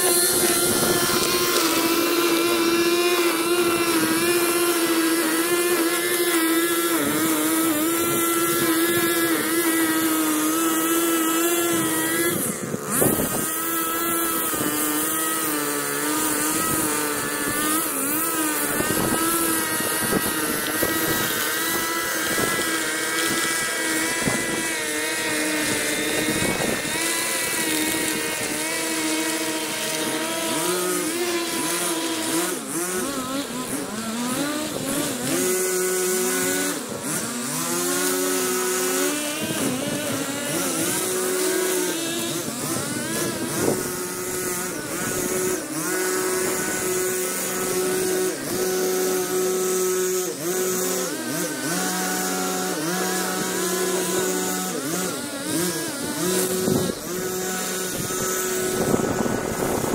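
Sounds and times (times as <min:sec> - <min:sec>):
string trimmer engine whining: 0:00.0 - 0:59.9.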